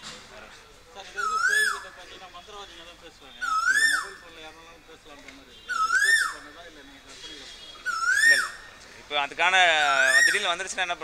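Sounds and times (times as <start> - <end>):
faint background talk: 0.0 - 9.2
loud whistle-like call: 1.2 - 1.9, 3.4 - 4.2, 5.7 - 6.5, 7.7 - 8.6.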